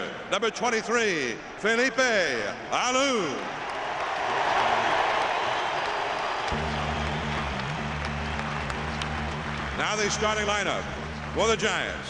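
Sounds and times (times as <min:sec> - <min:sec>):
crowd cheering and applauding: 0:03.5 - 0:12.0
low steady music: 0:06.6 - 0:12.0.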